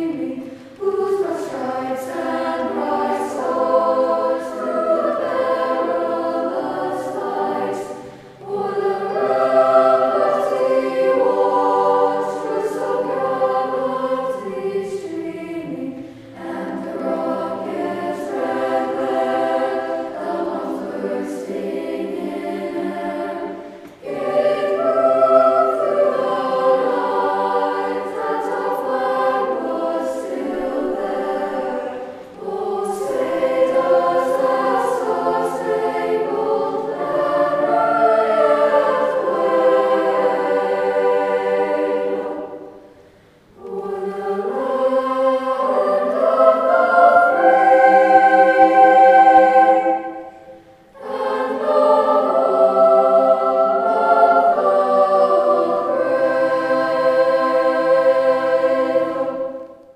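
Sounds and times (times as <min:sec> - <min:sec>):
choir singing: 0:00.0 - 0:59.9.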